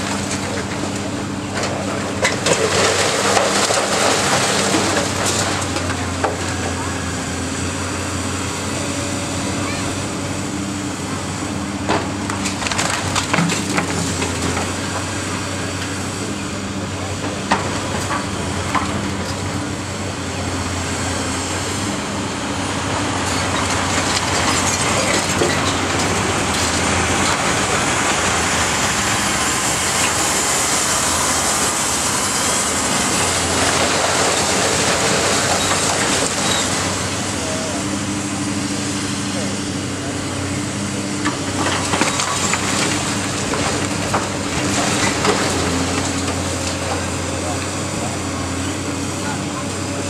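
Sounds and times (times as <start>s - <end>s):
dump truck passing: 0.0s - 50.0s
excavator diesel engines running: 0.0s - 50.0s.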